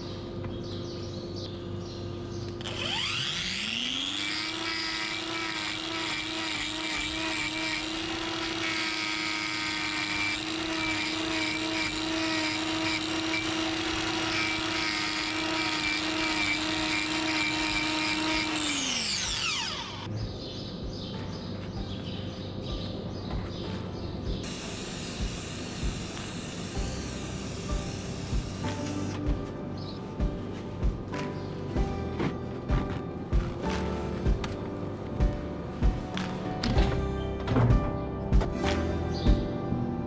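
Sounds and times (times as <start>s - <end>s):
angle grinder grinding hoof: 2.6s - 20.1s, 24.4s - 29.6s.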